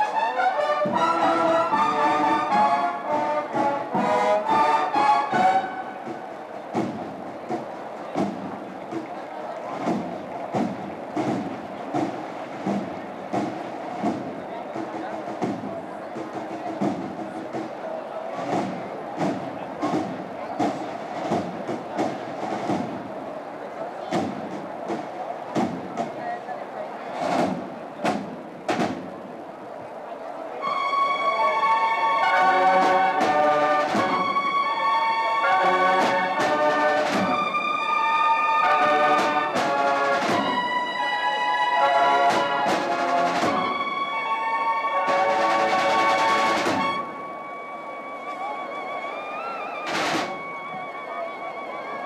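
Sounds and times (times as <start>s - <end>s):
brass band playing a march: 0.0s - 25.9s, 30.6s - 52.0s
crowd murmur: 0.0s - 52.0s.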